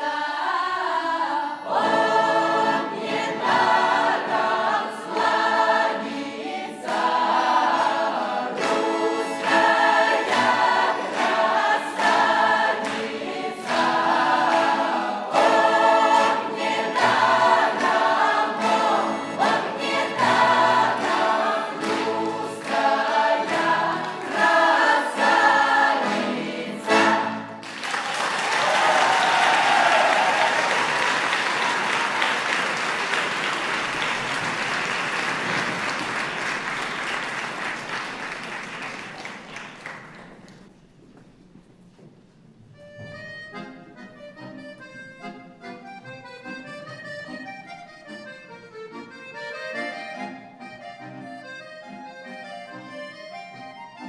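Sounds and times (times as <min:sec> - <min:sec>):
folk choir singing: 0:00.0 - 0:27.6
audience applause: 0:27.6 - 0:40.6.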